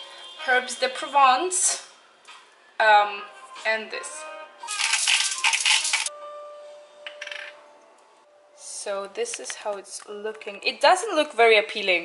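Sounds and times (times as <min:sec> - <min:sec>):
seasoning jar rattling: 0:04.7 - 0:06.1.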